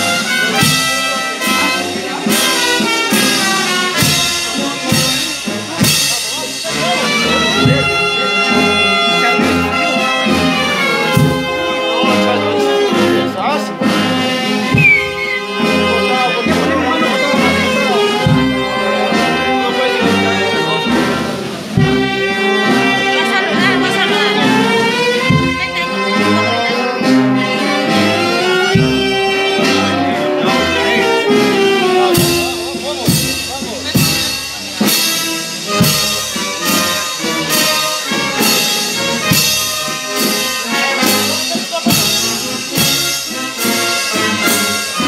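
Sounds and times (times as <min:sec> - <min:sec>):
drum and cymbal strikes: 0:00.0 - 0:08.8, 0:31.2 - 0:45.0
brass band playing slow march: 0:00.0 - 0:45.0.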